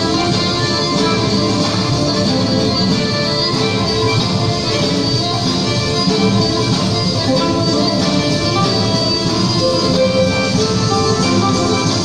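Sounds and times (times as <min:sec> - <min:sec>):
folk dance music on strings and fiddle: 0:00.0 - 0:12.0.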